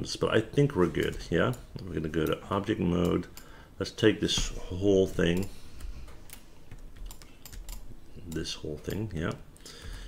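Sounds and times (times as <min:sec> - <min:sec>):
keyboard and mouse clicks: 0:05.4 - 0:09.7.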